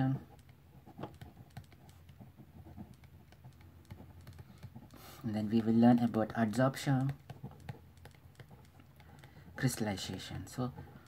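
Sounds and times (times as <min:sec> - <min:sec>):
stylus tapping on tablet screen: 0:00.3 - 0:10.2.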